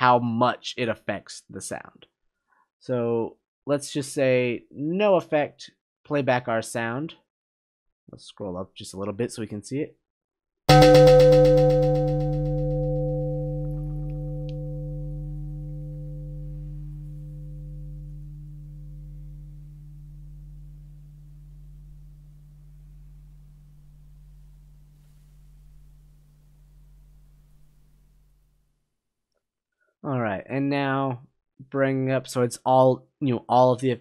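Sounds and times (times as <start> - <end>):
low ringing bell-like metal tone: 10.7 - 28.6.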